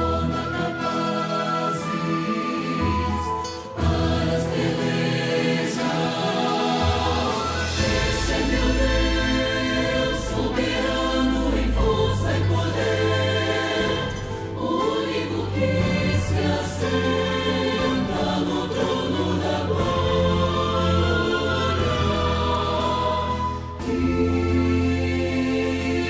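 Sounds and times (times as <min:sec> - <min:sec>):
voices singing a hymn: 0:00.0 - 0:26.0.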